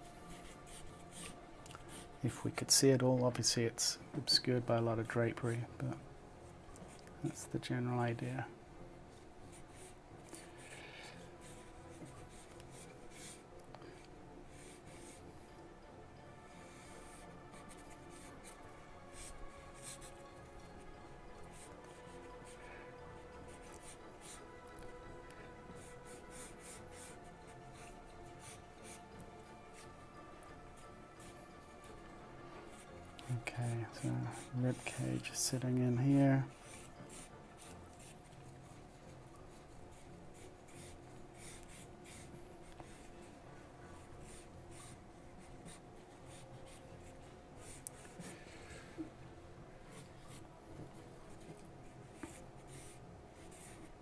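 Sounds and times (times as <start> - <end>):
soft background music: 0.0 - 54.0
charcoal pencil scratching paper: 0.2 - 2.1, 9.5 - 13.5, 14.5 - 15.3, 16.3 - 32.0, 32.7 - 48.4, 49.9 - 54.0.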